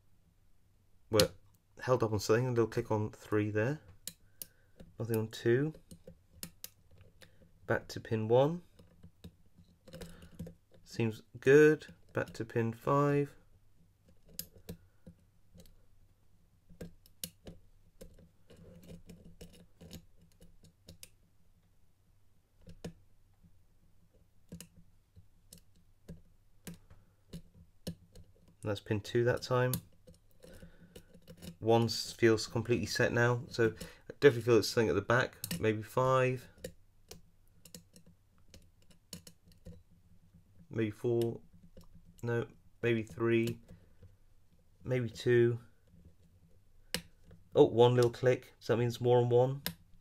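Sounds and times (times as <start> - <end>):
lock pick clicking and scraping: 4.0 - 7.5, 8.6 - 10.9, 14.0 - 15.8, 16.7 - 21.2, 22.6 - 23.0, 24.1 - 28.6, 29.3 - 31.6, 35.3 - 35.7, 36.5 - 39.9, 45.8 - 47.5.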